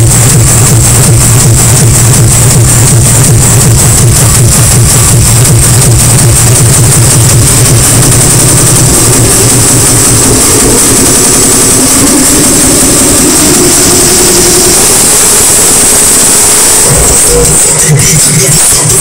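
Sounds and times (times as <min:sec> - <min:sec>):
hard techno beat: 0:00.0 - 0:19.0
sustained synth tones: 0:00.0 - 0:19.0.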